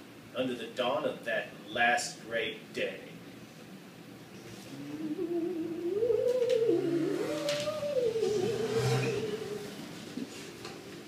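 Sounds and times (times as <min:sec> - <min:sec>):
man humming: 0:04.4 - 0:10.4.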